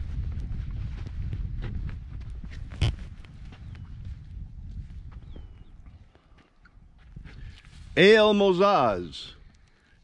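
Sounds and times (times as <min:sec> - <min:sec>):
wind rumble on microphone: 0:00.0 - 0:08.0
footsteps on dry dirt: 0:00.0 - 0:08.4.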